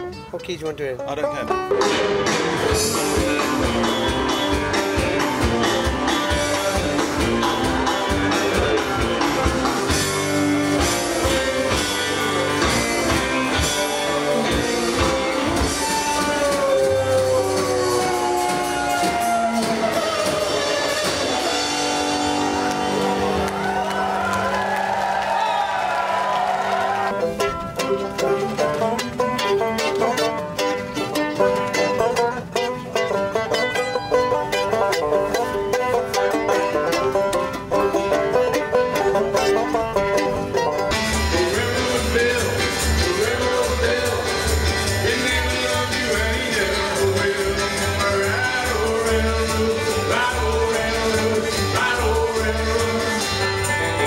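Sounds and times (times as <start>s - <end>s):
banjo picked quickly: 0.0s - 24.6s, 26.3s - 54.0s
acoustic string band music: 0.0s - 54.0s
upright bass pulsing: 1.2s - 24.7s, 27.2s - 54.0s.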